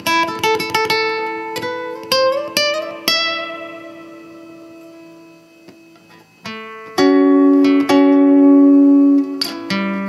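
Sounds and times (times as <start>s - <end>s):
fingerstyle acoustic guitar: 0.0s - 10.0s.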